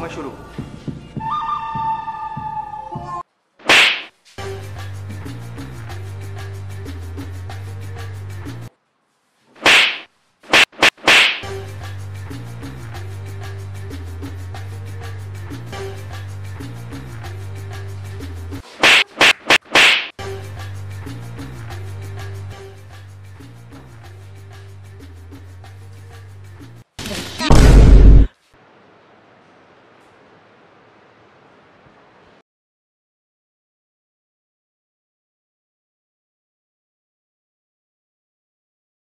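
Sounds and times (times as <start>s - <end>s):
background music with held notes: 0.0s - 3.2s, 11.4s - 18.6s, 20.2s - 26.8s
hand slapping a person: 3.7s - 4.1s, 9.6s - 11.5s, 18.8s - 20.2s
sharp whip-like swish: 3.7s - 4.1s, 9.6s - 11.6s, 18.6s - 20.2s.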